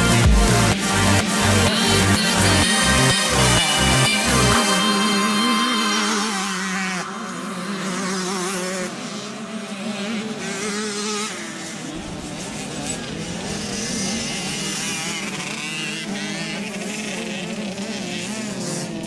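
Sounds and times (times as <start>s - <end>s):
motocross motorcycle engines revving: 0.0s - 19.0s.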